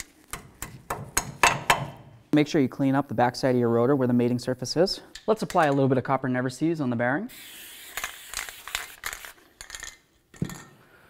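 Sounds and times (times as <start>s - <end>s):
aerosol spray hissing: 7.3s - 9.2s.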